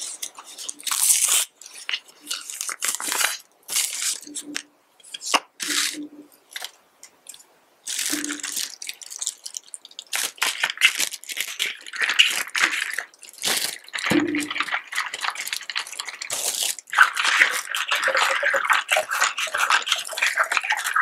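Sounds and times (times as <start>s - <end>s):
plastic wrap crackling: 0.0s - 6.8s, 7.8s - 21.0s
sipping through a straw: 7.9s - 8.8s.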